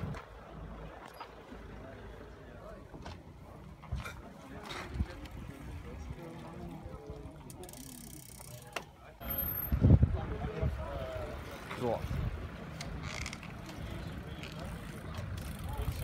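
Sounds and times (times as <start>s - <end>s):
people talking in background: 0.5s - 16.0s.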